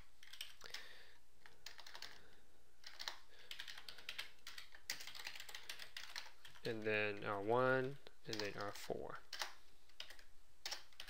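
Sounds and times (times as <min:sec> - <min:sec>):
typing on computer keyboard: 0:00.2 - 0:07.2, 0:08.3 - 0:11.0.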